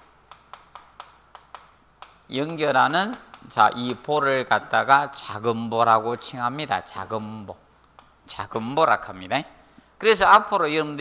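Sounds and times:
chalk tapping on blackboard: 0.0s - 4.5s.

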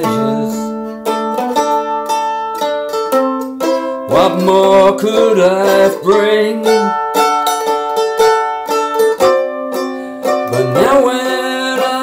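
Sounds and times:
mandolin strumming: 0.0s - 12.0s.

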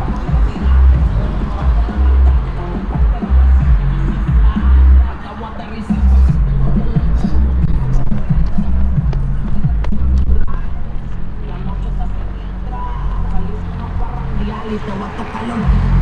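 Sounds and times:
person singing: 0.0s - 10.9s
song with heavy bass: 0.0s - 16.0s.

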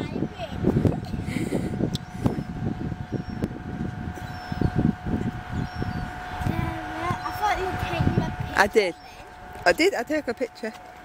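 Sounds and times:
faint background hum: 0.0s - 11.0s
wind rumble on microphone: 0.0s - 11.0s.

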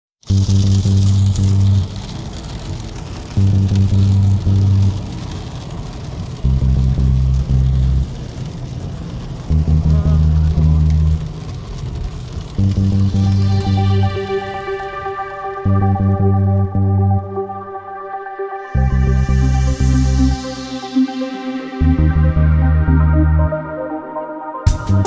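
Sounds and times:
deep synth bass chord: 0.3s - 2.0s, 3.4s - 5.0s, 6.5s - 8.1s, 9.5s - 11.3s, 12.6s - 25.0s
steady hiss: 0.3s - 23.4s.

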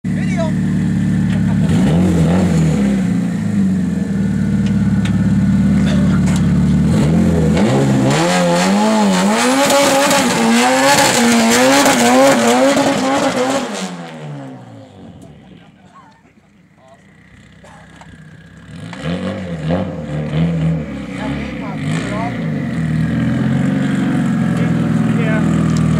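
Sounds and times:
car engine revving: 0.1s - 15.8s, 17.0s - 25.9s.

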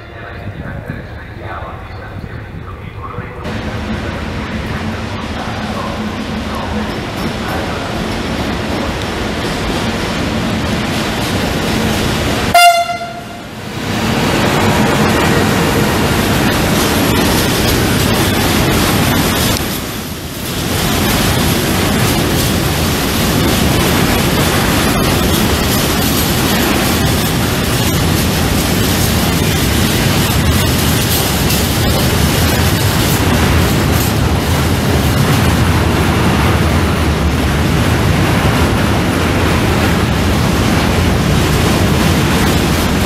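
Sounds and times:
train rumble: 0.0s - 43.0s
train wheels clattering on rails: 3.5s - 43.0s
train horn blast: 12.5s - 13.6s.

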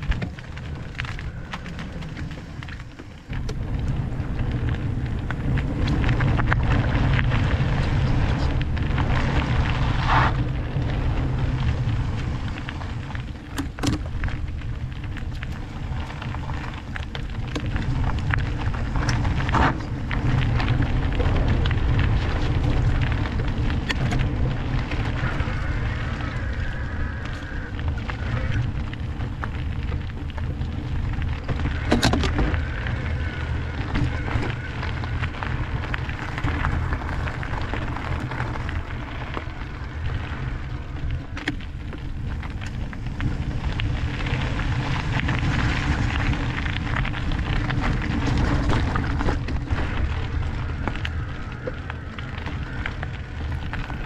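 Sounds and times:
bike rattling over bumps: 0.0s - 54.0s
tyres crunching over gravel: 0.0s - 54.0s
wind rumble on microphone: 0.0s - 54.0s.

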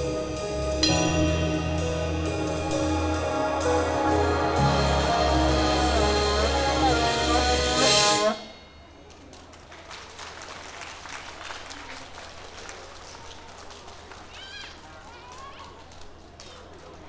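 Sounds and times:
drums with backing track: 0.0s - 8.6s
person singing: 0.0s - 8.6s
people clapping: 9.0s - 17.0s.

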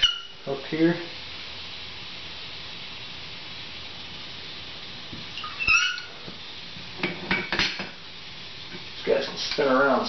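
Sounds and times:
high-pitched reptile chirp: 0.0s - 0.4s, 5.4s - 6.1s
steady hiss: 0.0s - 10.0s.

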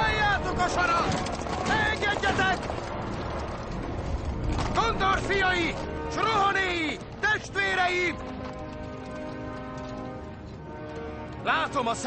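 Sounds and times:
horse hooves clopping: 0.0s - 12.0s.

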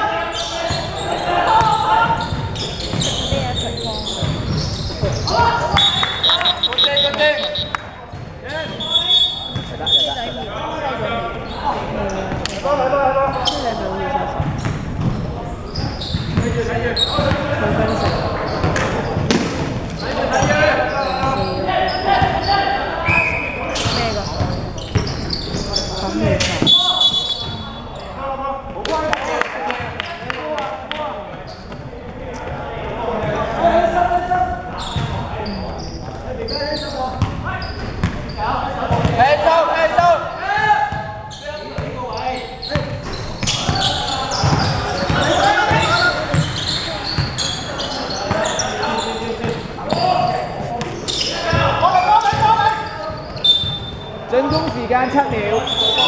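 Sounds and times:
players calling out: 0.0s - 14.3s, 15.2s - 56.0s.

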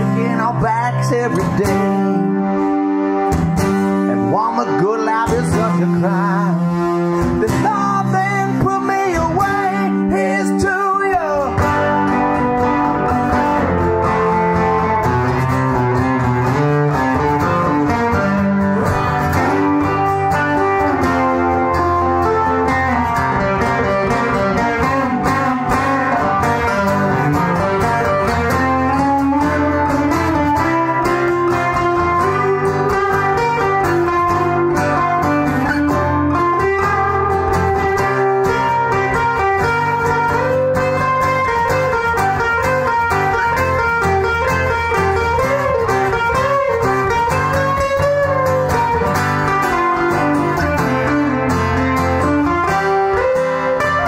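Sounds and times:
picked lead guitar: 0.0s - 54.0s
strummed rhythm guitar: 0.0s - 54.0s.

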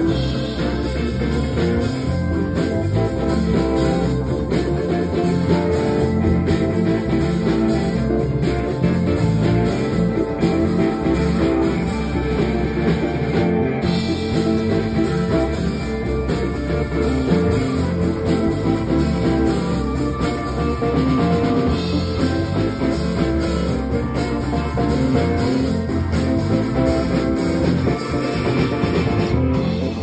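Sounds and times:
soul band instrumental groove: 0.0s - 30.0s.

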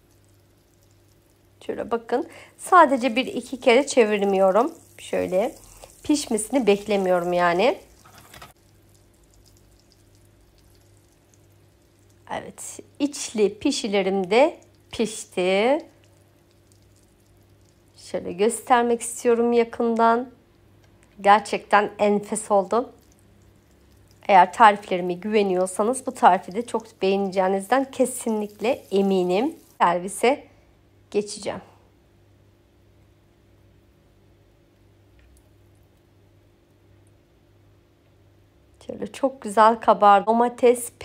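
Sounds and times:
oil sizzling in a frying pan: 0.0s - 17.9s, 22.4s - 29.8s
faint low hum: 0.0s - 41.0s.

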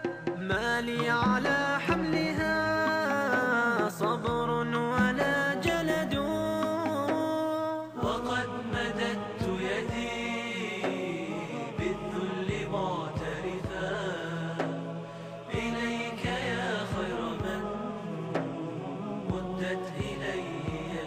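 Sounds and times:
steady beat: 0.0s - 7.4s, 8.0s - 21.0s
male chorus chanting: 0.0s - 21.0s.

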